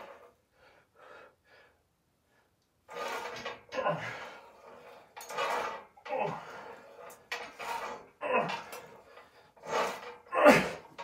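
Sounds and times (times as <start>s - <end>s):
man breathing hard: 0.0s - 2.6s.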